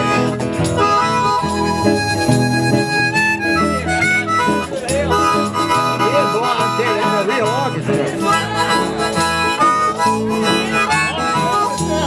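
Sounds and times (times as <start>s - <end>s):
guitar and bass: 0.0s - 12.0s
harmonica lead: 0.0s - 12.0s.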